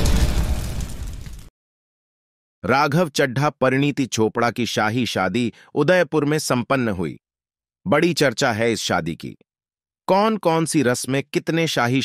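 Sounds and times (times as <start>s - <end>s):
explosion sound effect: 0.0s - 1.5s.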